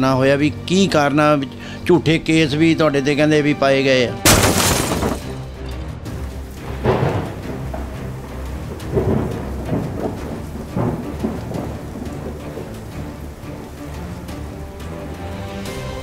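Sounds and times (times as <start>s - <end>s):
low droning music: 0.0s - 16.0s
rain hiss: 6.2s - 16.0s
thunder claps: 6.6s - 13.3s.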